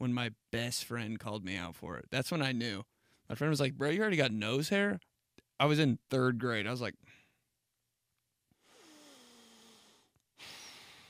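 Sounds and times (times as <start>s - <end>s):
man breathing: 7.0s - 7.5s, 8.5s - 11.0s.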